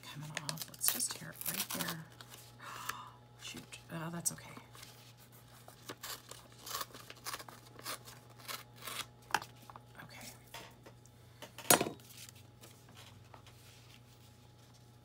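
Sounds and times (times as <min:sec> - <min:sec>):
faint steady hum: 0:00.0 - 0:15.0
paper tearing along a ruler: 0:05.9 - 0:09.1.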